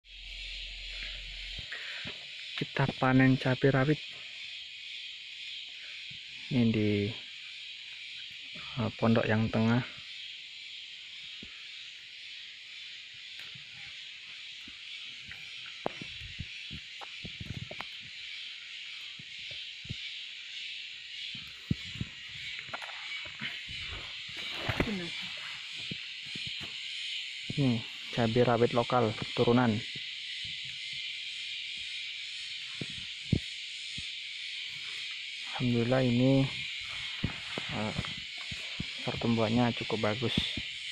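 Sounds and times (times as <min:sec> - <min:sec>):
high-pitched insect chorus: 0:00.0 - 0:40.9.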